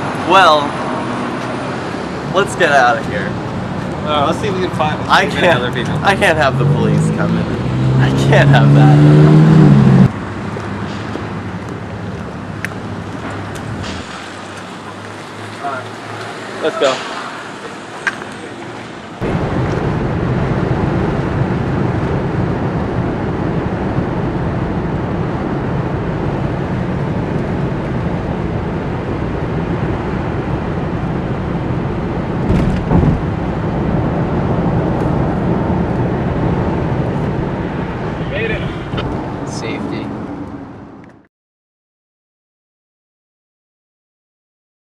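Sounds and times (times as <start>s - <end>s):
car road and engine noise: 0.0s - 41.3s
thumps: 32.4s - 33.3s.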